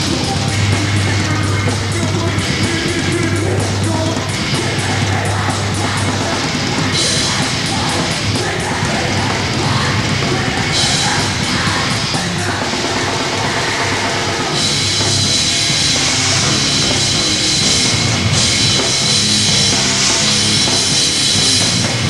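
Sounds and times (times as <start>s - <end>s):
bass guitar: 0.0s - 22.0s
distorted electric guitars: 0.0s - 22.0s
drum kit: 0.0s - 22.0s.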